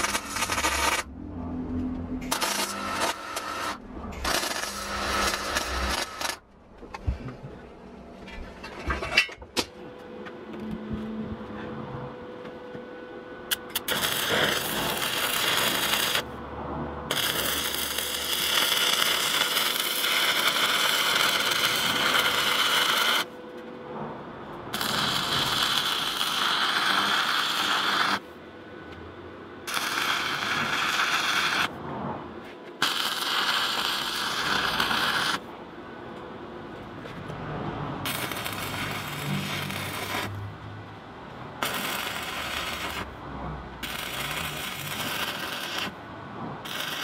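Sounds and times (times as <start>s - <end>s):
welding arc burning: 0.0s - 1.1s, 2.2s - 6.4s, 13.5s - 16.4s, 17.1s - 23.4s, 24.7s - 28.3s, 29.6s - 31.8s, 32.8s - 35.5s, 38.0s - 40.4s, 41.6s - 43.2s, 43.8s - 46.0s, 46.6s - 47.0s.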